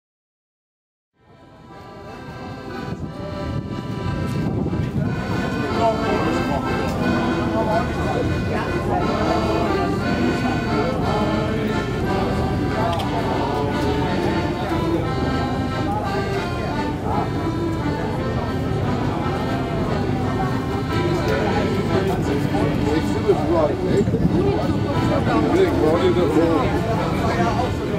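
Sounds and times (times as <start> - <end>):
accordion: 1.2 - 27.9
choir singing a sea shanty: 1.4 - 27.9.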